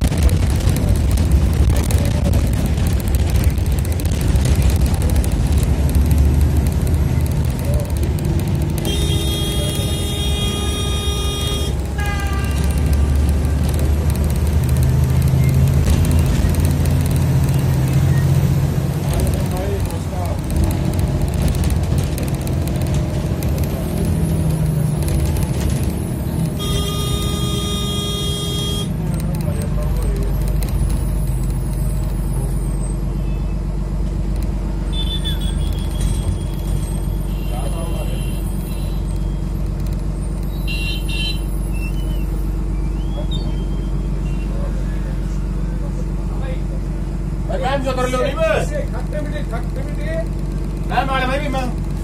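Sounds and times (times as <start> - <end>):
engine and road rumble: 0.0 - 52.0
vehicle horn: 8.8 - 12.6, 26.5 - 29.0, 34.9 - 36.0, 40.6 - 41.5.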